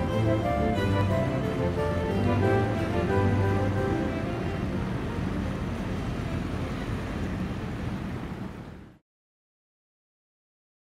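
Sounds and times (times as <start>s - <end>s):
rushing water: 0.0s - 8.8s
low engine rumble: 0.0s - 9.0s.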